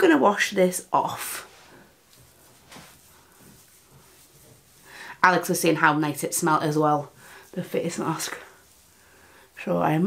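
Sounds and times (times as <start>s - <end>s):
damp cloth rubbing on face: 1.0s - 10.0s.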